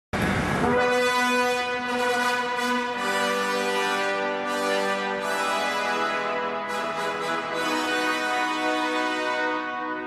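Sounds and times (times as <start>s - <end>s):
brass instruments holding a chord: 0.5s - 10.0s.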